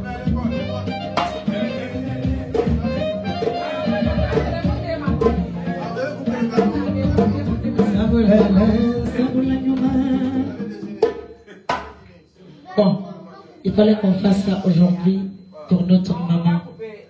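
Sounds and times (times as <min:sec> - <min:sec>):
dance music with drums: 0:00.0 - 0:12.0
woman singing into microphone: 0:01.3 - 0:10.9
sharp knocks: 0:11.1 - 0:12.0.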